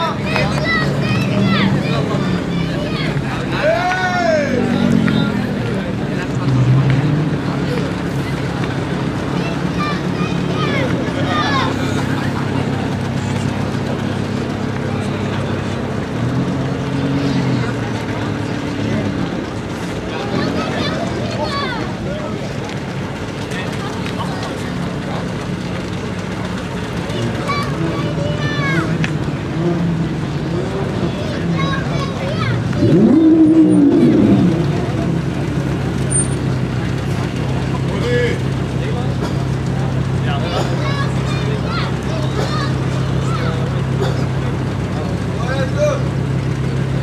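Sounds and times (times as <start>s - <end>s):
car engines idling: 0.0s - 47.0s.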